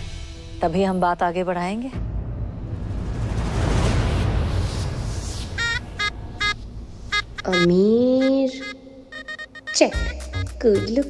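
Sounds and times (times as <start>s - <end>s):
noisy swell: 2.3s - 7.4s
high electronic beeps: 5.6s - 11.0s.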